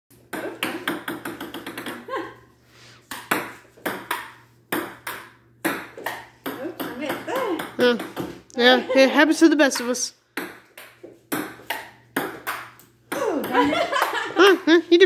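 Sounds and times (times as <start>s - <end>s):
table tennis ball bouncing: 0.1s - 2.1s, 3.0s - 8.4s, 9.6s - 14.5s
person laughing: 1.9s - 2.5s, 13.2s - 15.0s
person speaking: 6.6s - 10.1s.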